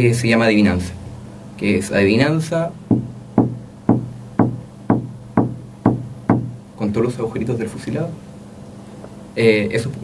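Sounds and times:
sharp knocks on a desk: 2.9 - 6.6.

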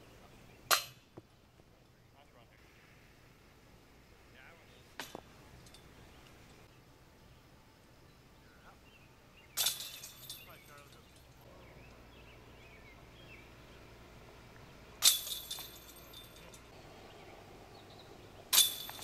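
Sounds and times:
chains jingling: 5.0 - 6.0, 9.6 - 11.4, 15.0 - 16.7, 18.5 - 19.0
discs clanging on metal chains: 5.0 - 6.0, 9.6 - 11.4, 15.0 - 16.7, 18.5 - 19.0.

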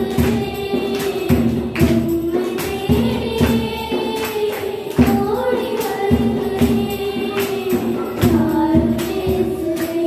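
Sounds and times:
girls singing in unison: 0.0 - 10.0.

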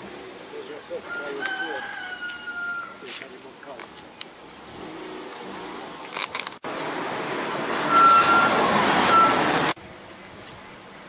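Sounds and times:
vehicle noise rushing: 3.0 - 10.1
short high-pitched beeps: 7.9 - 9.4.

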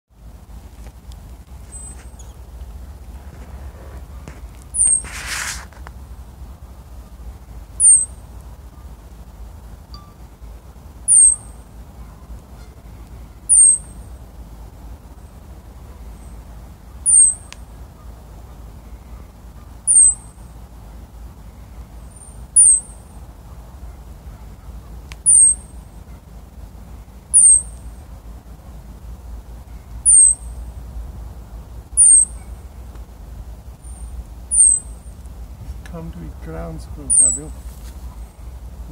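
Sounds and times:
ground squirrel alarm calls: 1.4 - 38.9
ground squirrel alarm chirps: 1.6 - 2.5, 4.2 - 5.2, 7.7 - 8.3, 11.0 - 11.7, 13.4 - 14.2, 15.9 - 17.7, 19.6 - 20.4, 22.0 - 23.2, 24.6 - 26.1, 27.3 - 27.9, 29.8 - 30.7, 31.9 - 32.7, 33.8 - 35.2, 36.3 - 38.5.

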